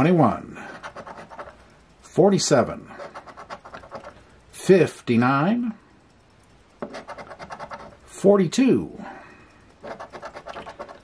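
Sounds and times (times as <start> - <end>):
coin scraping lottery ticket: 0.0 - 1.6, 2.9 - 4.2, 6.8 - 8.0, 9.8 - 11.0.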